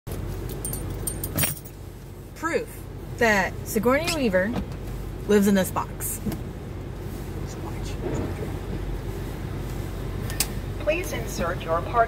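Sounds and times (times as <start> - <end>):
light metallic clinks and jingles: 0.3 - 1.8
car idling inside cabin: 0.3 - 12.0.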